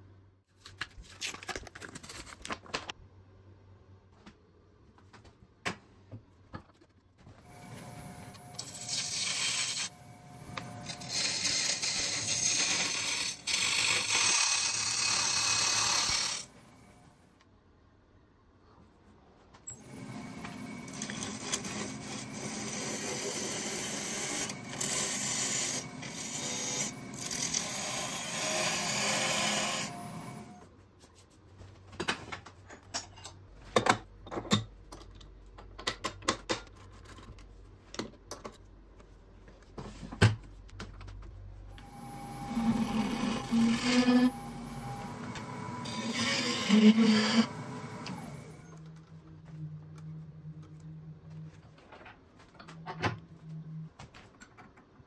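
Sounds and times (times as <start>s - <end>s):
lathe gouge hissing scrape: 8.6s - 9.9s, 41.9s - 48.1s.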